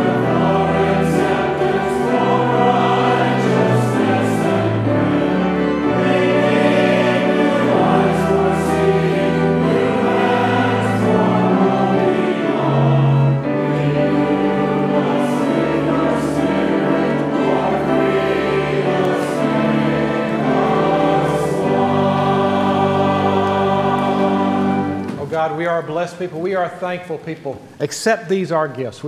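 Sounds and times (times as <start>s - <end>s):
choir singing a hymn: 0.0s - 25.8s.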